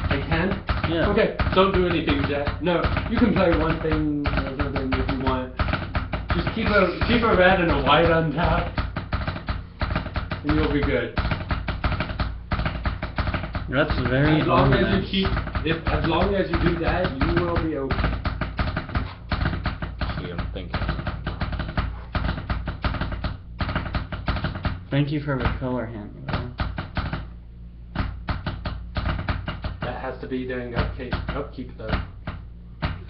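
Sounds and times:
trading cards clicking: 0:00.0 - 0:24.8
steady low hum: 0:00.0 - 0:33.0.

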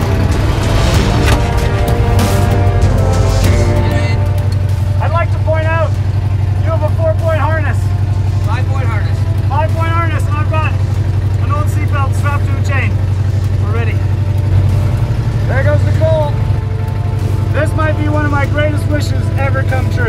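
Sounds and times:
truck engine idling: 0:00.0 - 0:20.0
man talking: 0:03.8 - 0:04.4, 0:06.6 - 0:10.8, 0:17.5 - 0:20.0.

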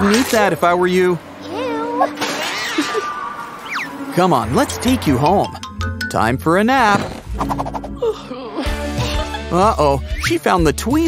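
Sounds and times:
high whining vocal cry: 0:01.4 - 0:04.1.

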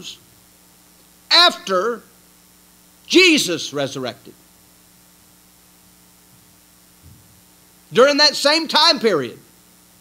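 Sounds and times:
low electrical hum: 0:00.0 - 0:10.0
man talking: 0:01.3 - 0:02.1, 0:03.1 - 0:04.4, 0:07.9 - 0:09.4.

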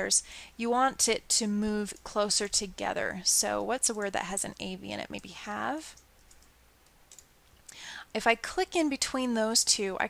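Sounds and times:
keyboard and mouse clicks: 0:05.9 - 0:07.7.

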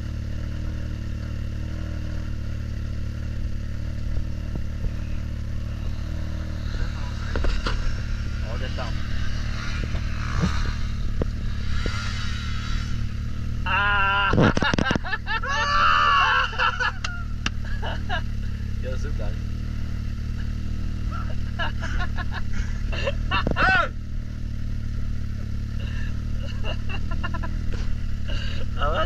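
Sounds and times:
distant motocross bike revving: 0:00.0 - 0:29.0
engine idling: 0:00.0 - 0:29.0.

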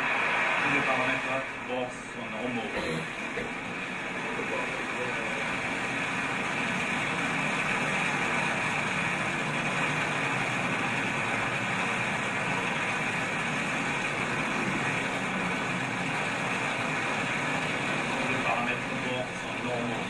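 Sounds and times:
rocket engines rushing roar: 0:00.0 - 0:20.0.

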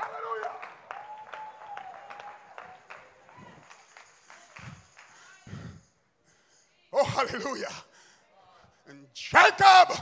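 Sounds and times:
people clapping in rhythm: 0:00.0 - 0:05.8.

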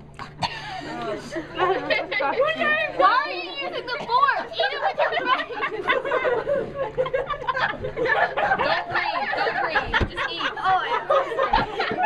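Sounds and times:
voices talking and exclaiming: 0:00.7 - 0:12.0.

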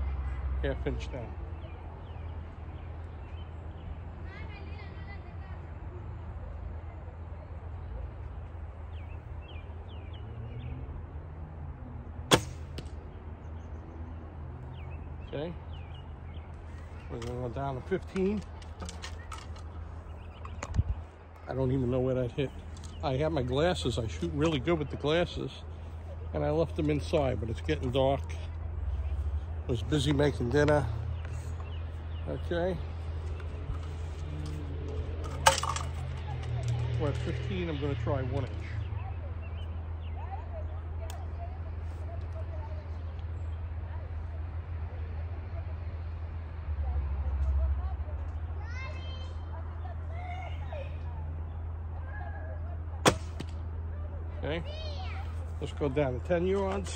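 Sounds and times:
small birds chirping: 0:00.0 - 0:35.2, 0:36.0 - 0:44.2
arrow knocking into target: 0:12.3 - 0:13.0, 0:53.1 - 0:53.6
arrows clinking: 0:12.3 - 0:13.0, 0:33.2 - 0:37.3, 0:53.0 - 0:53.6.

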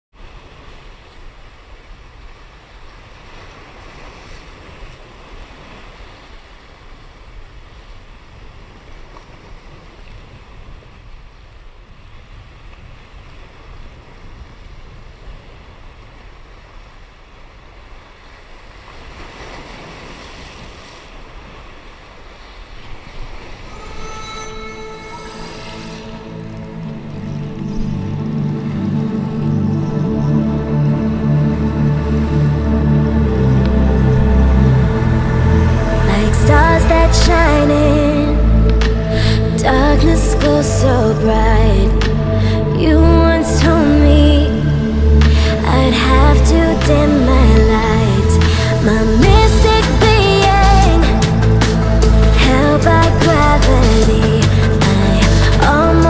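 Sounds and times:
waves washing over rocks: 0:00.2 - 0:23.7
music: 0:23.7 - 0:56.0
wind on microphone: 0:25.4 - 0:56.0.

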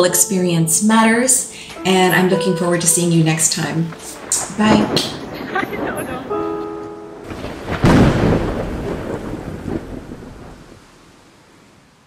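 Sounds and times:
thunderclap cracking and rumbling: 0:03.3 - 0:06.4, 0:07.2 - 0:11.3.

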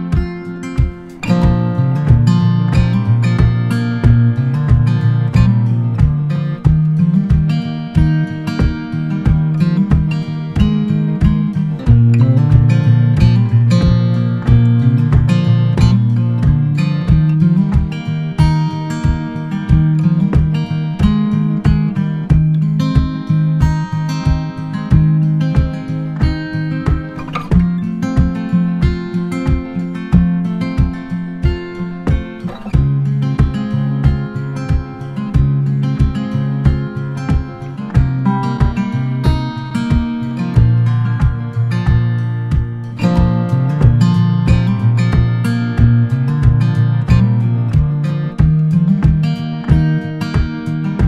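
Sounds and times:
acoustic guitar picking: 0:00.0 - 0:51.0.

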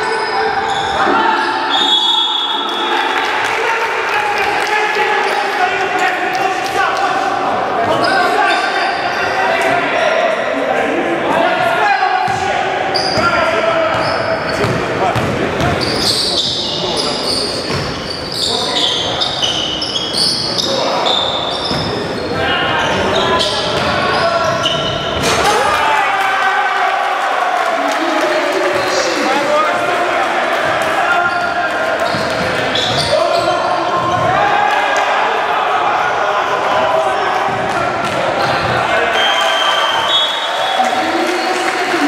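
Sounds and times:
sneakers squeaking: 0:00.0 - 0:02.9, 0:07.8 - 0:10.4, 0:12.2 - 0:25.7, 0:30.6 - 0:34.4, 0:36.8 - 0:42.0
basketball bouncing on wooden court: 0:13.9 - 0:15.9, 0:30.6 - 0:34.4.

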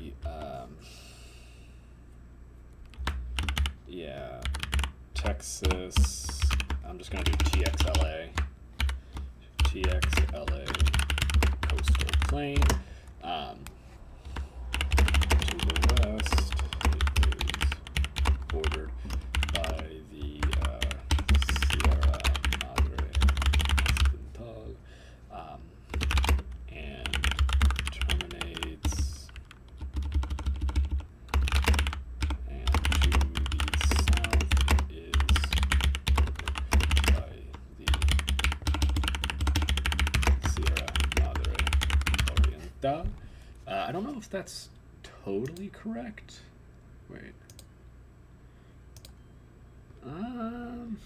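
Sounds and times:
computer keyboard typing: 0:02.8 - 0:12.8, 0:14.2 - 0:24.2, 0:25.9 - 0:42.6.

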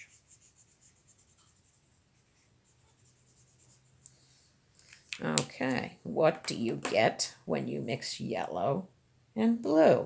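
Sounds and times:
felt-tip marker scratching on paper: 0:00.0 - 0:04.0.

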